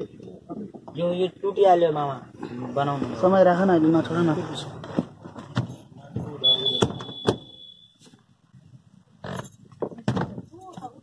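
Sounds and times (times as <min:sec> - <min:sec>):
high-pitched electronic beep: 0:06.4 - 0:08.0.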